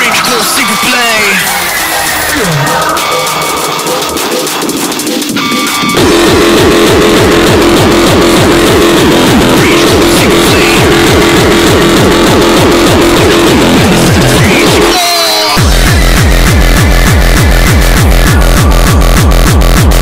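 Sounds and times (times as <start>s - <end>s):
hard electronic dance music: 0.0s - 20.0s
pounding kick drums: 1.4s - 15.0s, 15.6s - 20.0s.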